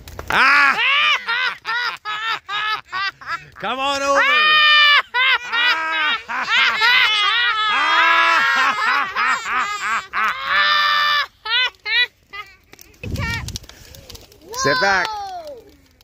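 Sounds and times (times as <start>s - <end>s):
child and adult shrieking laughing: 0.3s - 13.4s.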